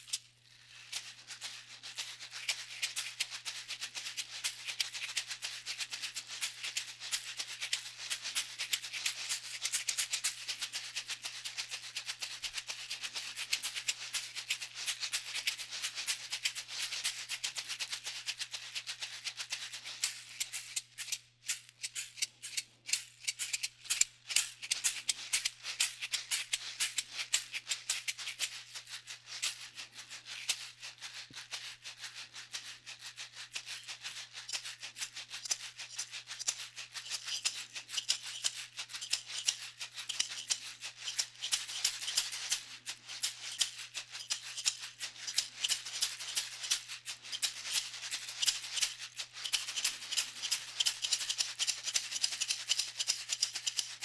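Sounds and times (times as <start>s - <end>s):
basket shakers shaking: 0.0s - 54.0s.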